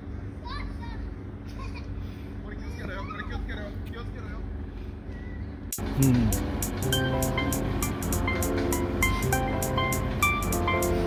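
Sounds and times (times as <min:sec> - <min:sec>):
steady low hum: 0:05.8 - 0:11.0.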